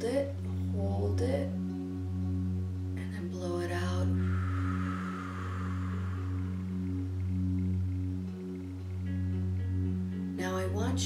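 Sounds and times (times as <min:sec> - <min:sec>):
low meditation drone: 0:00.0 - 0:11.0
long breath blown out: 0:04.0 - 0:08.2.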